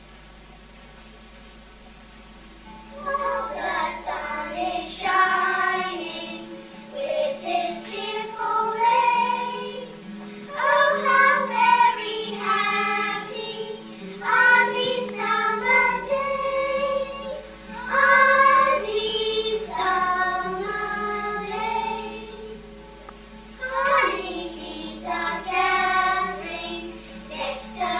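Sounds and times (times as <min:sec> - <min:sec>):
steady low hum: 0:00.0 - 0:27.9
children singing together: 0:02.9 - 0:22.7, 0:23.6 - 0:27.9.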